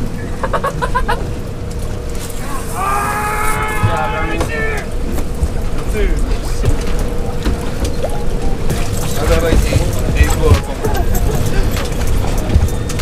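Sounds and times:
boat engine humming: 0.0 - 13.0
wind rumble: 0.0 - 13.0
person yelling: 2.4 - 4.9.

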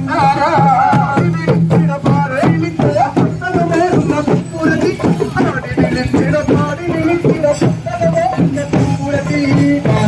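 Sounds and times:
steady percussion beat: 0.0 - 10.0.

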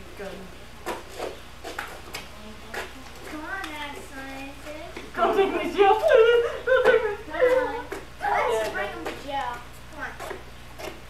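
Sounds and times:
steady low hum: 0.0 - 11.0
children talking: 2.3 - 10.4.

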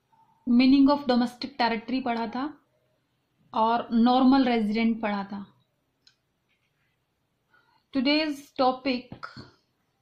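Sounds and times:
woman speaking: 0.4 - 2.7, 3.5 - 5.6, 7.9 - 9.6.

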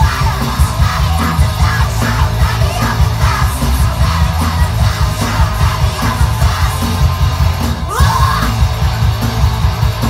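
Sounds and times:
bass guitar: 0.0 - 10.0
distorted electric guitars: 0.0 - 10.0
fast drums: 0.0 - 10.0
person yelling vocals: 7.9 - 8.6.

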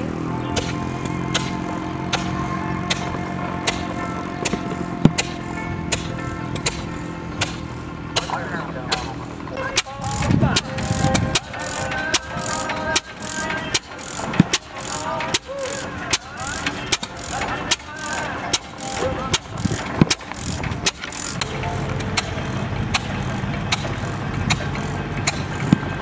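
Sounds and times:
engine pops and clicks: 0.0 - 26.0
steady low engine hum: 0.0 - 26.0.

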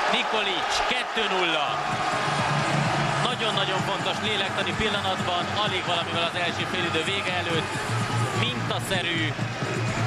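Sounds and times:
stadium crowd noise: 0.0 - 10.0
man commentating: 3.2 - 9.4.

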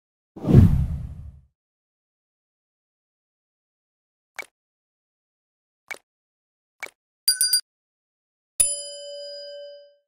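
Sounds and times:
deep whoosh: 0.4 - 1.4.

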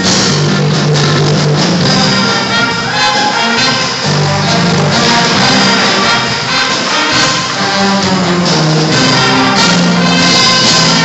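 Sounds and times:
brass instruments: 0.0 - 11.0
jazz band playing: 0.0 - 11.0.

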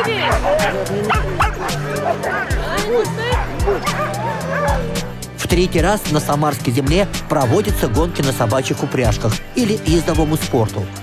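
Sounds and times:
sled dogs yelping and barking: 0.0 - 5.2
background music with beat: 0.0 - 11.0.

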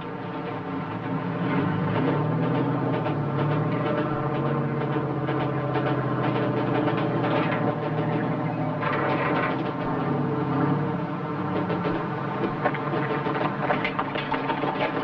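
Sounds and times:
boat engines droning: 0.0 - 15.0.

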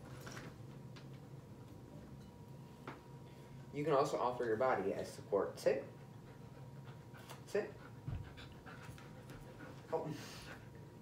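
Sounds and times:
dog panting: 5.7 - 11.0.

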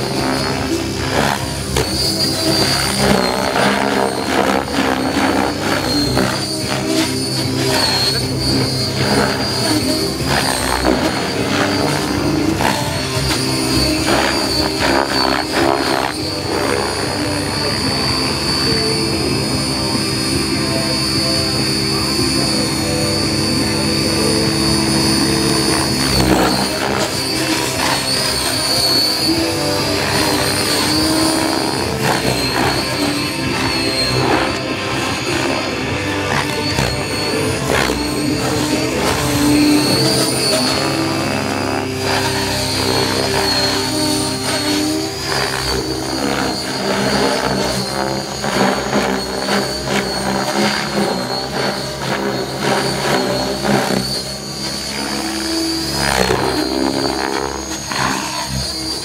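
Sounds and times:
rc helicopter motor whine: 0.0 - 59.0
rotor blades noise: 0.0 - 59.0.

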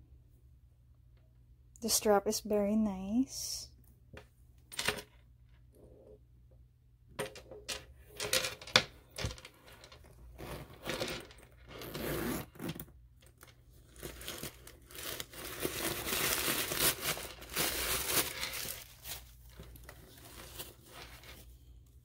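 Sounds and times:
zipper being pulled open: 10.3 - 11.0, 11.7 - 12.9
tissue paper crinkling: 13.8 - 21.7.

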